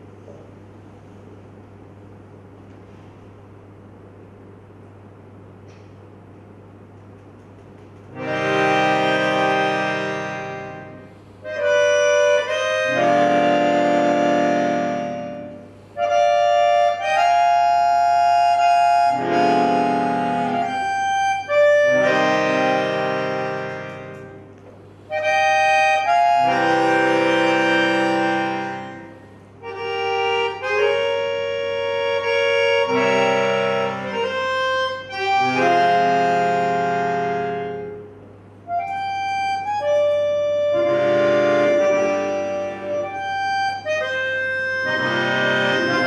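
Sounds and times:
accordion playing chords: 0:00.0 - 0:01.6, 0:07.6 - 0:46.0.

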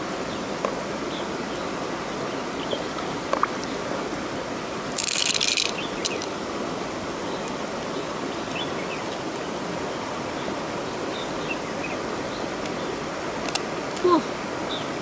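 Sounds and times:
river water rushing: 0:00.0 - 0:15.0.

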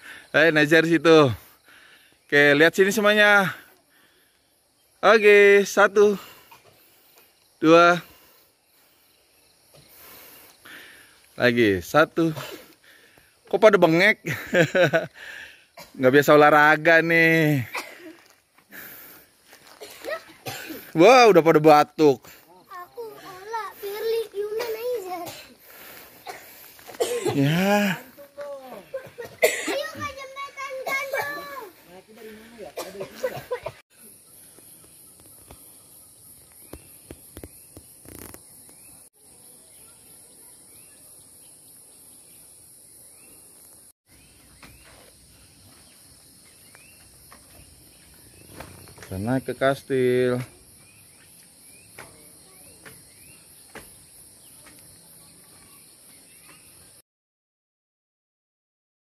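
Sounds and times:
people coughing: 0:17.7 - 0:18.2, 0:19.7 - 0:21.0, 0:24.6 - 0:25.6, 0:26.2 - 0:28.0, 0:28.9 - 0:30.0, 0:32.8 - 0:33.8.

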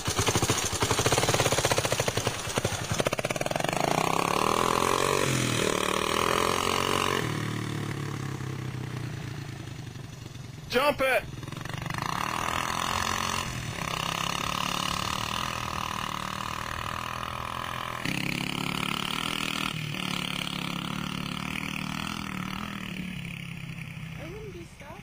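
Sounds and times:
motorcycle engine running: 0:00.0 - 0:25.0.

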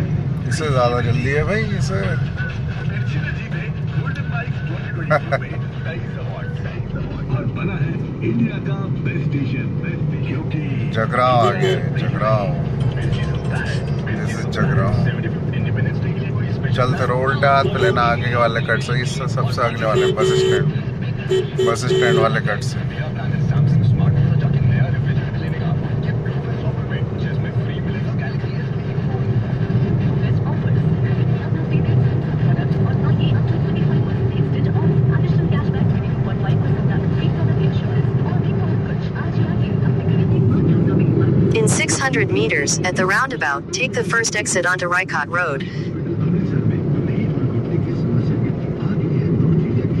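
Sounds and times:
car engine and road noise: 0:00.0 - 0:50.0.

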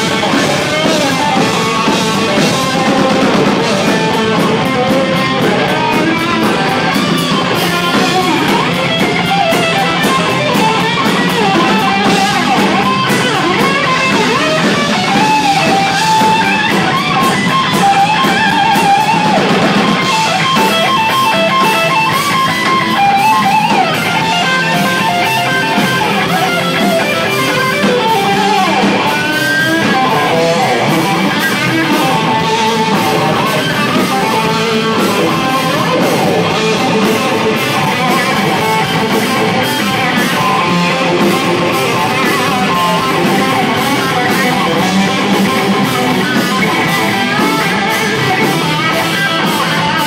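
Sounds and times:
hard rock band playing: 0:00.0 - 0:50.0.

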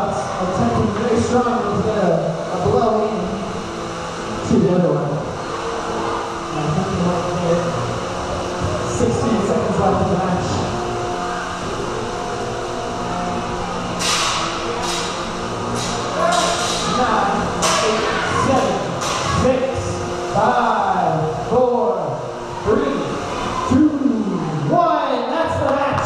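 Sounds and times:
voices in a reverberant hall: 0:00.0 - 0:26.0.

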